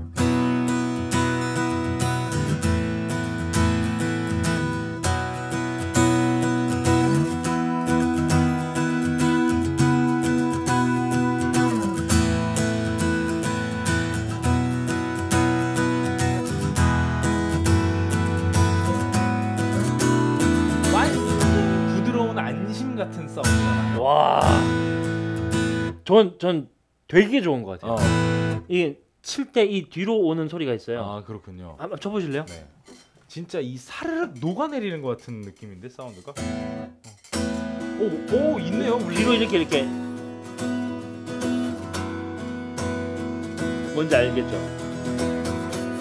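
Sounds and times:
acoustic guitar strumming chords: 0.0 - 26.0, 27.9 - 28.7, 36.1 - 46.0.

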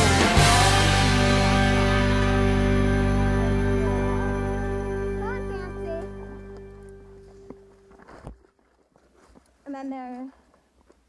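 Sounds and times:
music: 0.0 - 8.0
pony hoof steps: 6.5 - 11.0.

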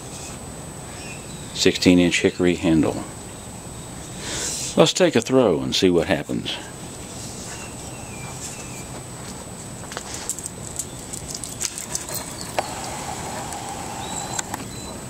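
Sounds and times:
faint bird chirps: 13.8 - 15.0.

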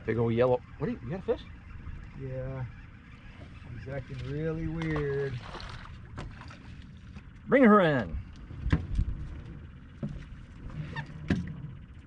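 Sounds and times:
knocks and thumps on a boat: 4.6 - 6.6, 8.6 - 11.8.

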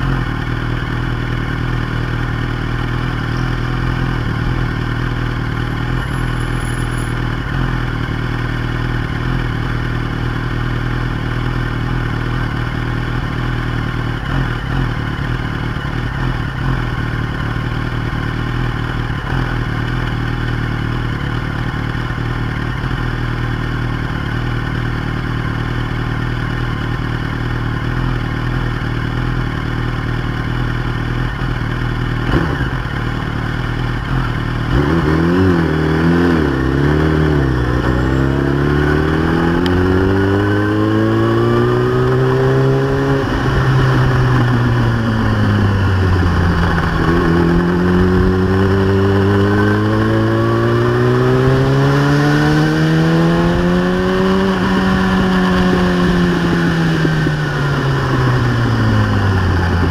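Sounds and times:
motorcycle engine idling: 0.0 - 34.7, 37.4 - 39.0, 43.2 - 49.3.

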